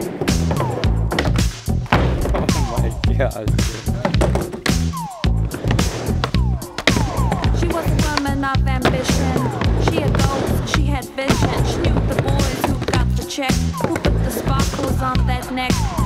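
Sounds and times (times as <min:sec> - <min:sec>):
backing music with steady beat: 0:00.0 - 0:16.0
skateboard trucks grinding: 0:00.0 - 0:16.0
skateboard wheels rolling: 0:03.6 - 0:16.0.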